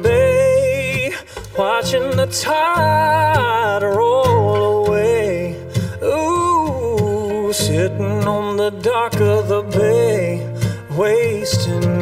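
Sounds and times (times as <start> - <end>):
acoustic guitar: 0.0 - 12.0
man singing soul ballad: 0.0 - 12.0.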